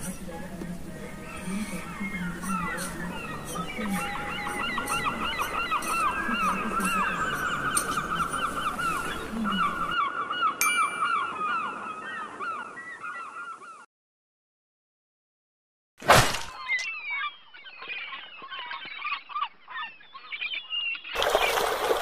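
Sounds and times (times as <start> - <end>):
flock of birds calling: 0.0 - 13.9, 16.6 - 21.6
short bright ding: 10.6 - 11.3.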